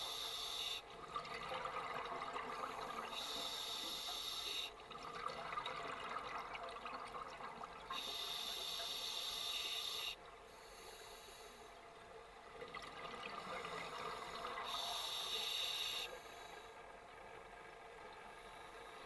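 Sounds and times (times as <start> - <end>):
regulator hissing inhalation: 14.2 - 16.4.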